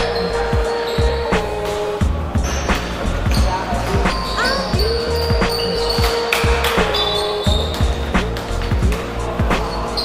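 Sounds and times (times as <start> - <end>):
music: 0.0 - 10.0
sneakers squeaking on court: 2.4 - 10.0.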